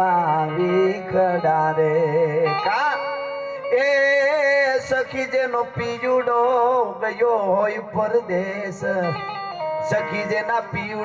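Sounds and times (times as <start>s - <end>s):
harmonium chords: 0.0s - 11.0s
man singing: 0.0s - 11.0s.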